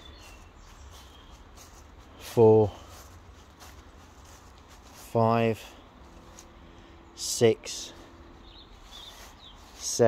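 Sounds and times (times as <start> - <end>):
faint bird chirps: 0.0 - 2.3, 8.0 - 9.9
faint outdoor ambience: 0.0 - 10.0.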